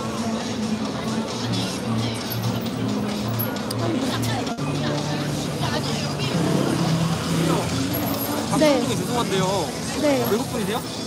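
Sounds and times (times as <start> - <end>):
voices of passers-by: 0.0 - 11.0.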